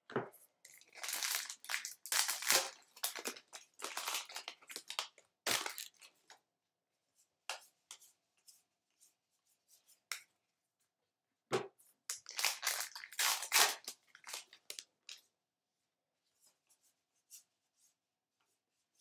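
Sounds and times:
wrapper rustling: 0:00.7 - 0:06.1, 0:12.2 - 0:15.2.

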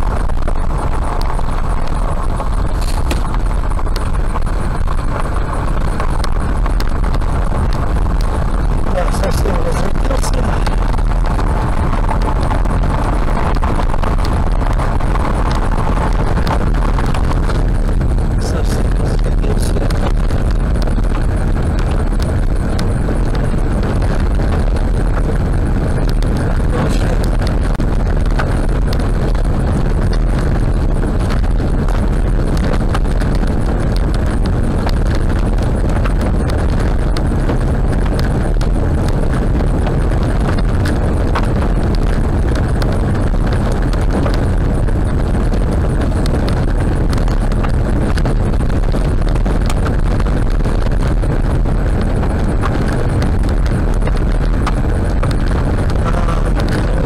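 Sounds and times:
tyres rumbling on gravel: 0:00.0 - 0:57.0.

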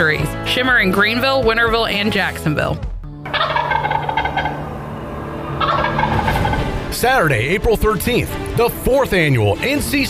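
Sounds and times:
turkey gobbling: 0:03.3 - 0:06.8.

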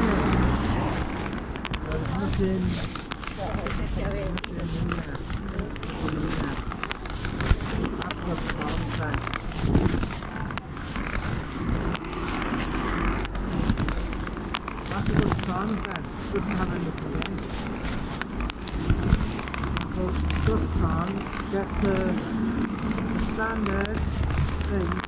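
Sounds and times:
indistinct voices: 0:00.0 - 0:25.0
scattered clicks: 0:00.0 - 0:25.0.

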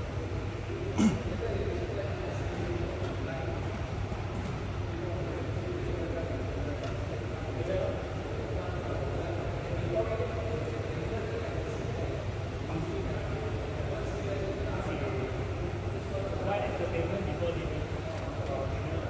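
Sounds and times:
faint indistinct voices: 0:00.0 - 0:19.0.

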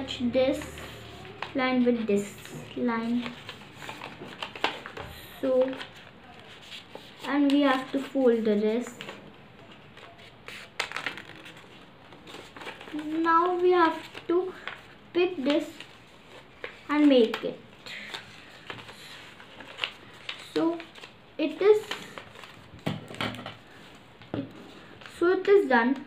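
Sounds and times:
paper rustling and crinkling: 0:00.5 - 0:25.2
short paper crackles: 0:08.9 - 0:21.2.

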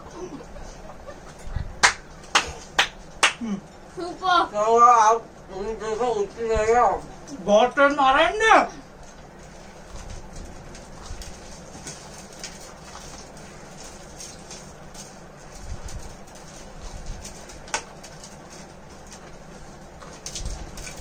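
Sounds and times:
low room noise: 0:00.0 - 0:21.0.

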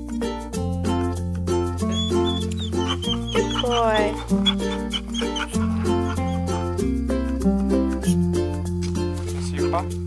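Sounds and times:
ukulele music: 0:00.0 - 0:10.0.

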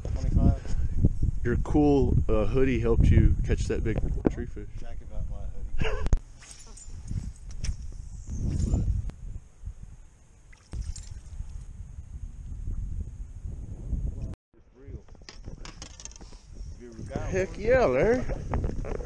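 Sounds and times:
wind rumble on microphone: 0:00.0 - 0:19.0
person laughing: 0:05.8 - 0:06.2.

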